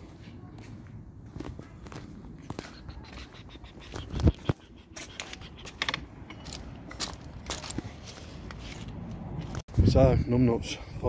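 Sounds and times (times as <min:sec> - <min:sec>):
footsteps on paving and grass: 0:00.0 - 0:05.8.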